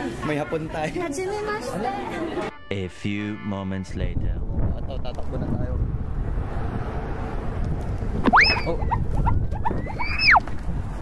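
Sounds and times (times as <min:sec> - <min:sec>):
wind rumbling on microphone: 0:03.9 - 0:11.0.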